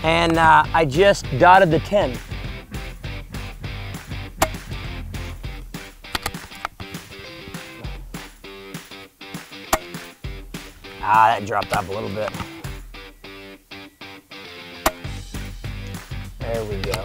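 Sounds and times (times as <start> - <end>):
background guitar music: 0.0 - 17.0
suppressed air rifle shots: 4.4 - 5.0, 9.7 - 10.1, 14.8 - 15.2.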